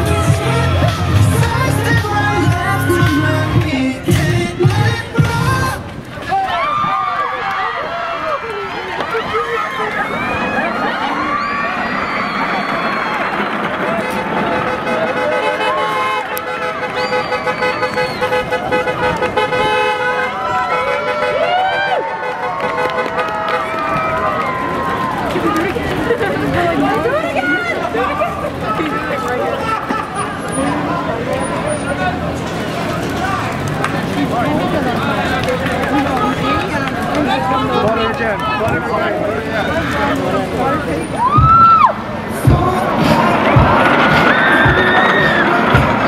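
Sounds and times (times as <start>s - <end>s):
pop music playback: 0.0s - 5.9s, 41.4s - 46.0s
crowd screaming and shouting: 0.0s - 46.0s.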